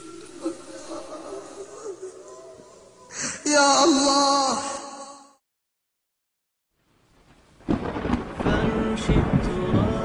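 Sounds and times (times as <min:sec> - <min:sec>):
rain hissing: 0:00.0 - 0:03.5, 0:06.8 - 0:10.0
thunder rumbling and cracking: 0:07.6 - 0:10.0.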